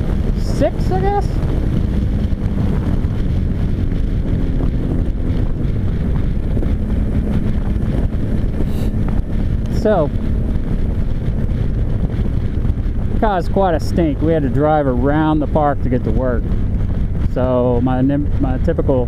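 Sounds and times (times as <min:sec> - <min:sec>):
motorcycle engine: 0:00.0 - 0:19.0
wind noise on microphone: 0:00.0 - 0:19.0.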